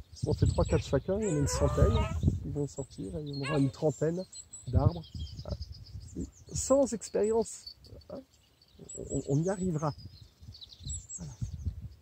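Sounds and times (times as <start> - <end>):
wind rumbling on microphone: 0.0 - 6.8, 7.8 - 12.0
small birds chirping: 0.0 - 12.0.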